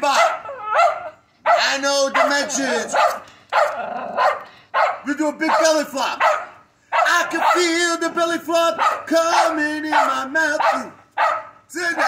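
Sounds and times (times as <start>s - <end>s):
small dog barking: 0.0s - 7.7s, 8.8s - 12.0s.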